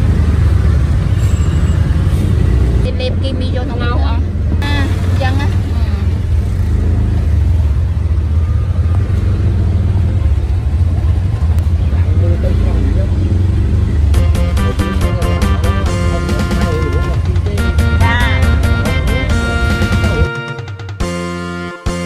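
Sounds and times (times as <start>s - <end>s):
vehicle rumble in traffic: 0.0s - 22.0s
passing voices: 9.1s - 20.8s
background music: 14.1s - 22.0s.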